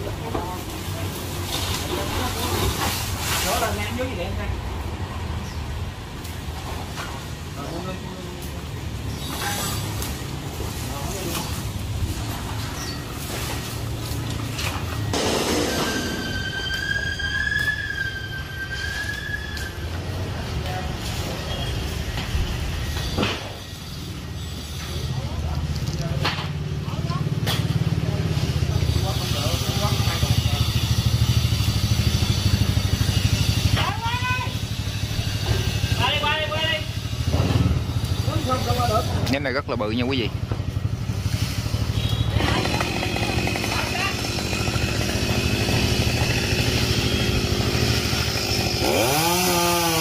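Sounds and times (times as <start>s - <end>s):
small engine running: 28.7s - 36.0s, 40.8s - 50.0s.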